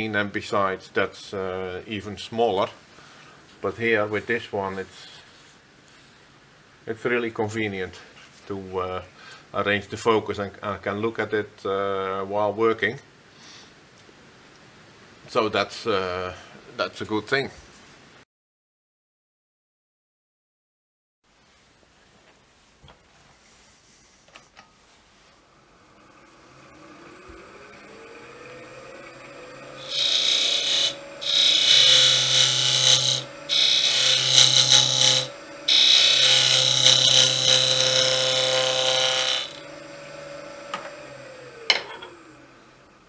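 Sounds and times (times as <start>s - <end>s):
wood lathe motor hum: 25.8s - 43.0s
gouge scraping spinning wood: 26.6s - 42.4s.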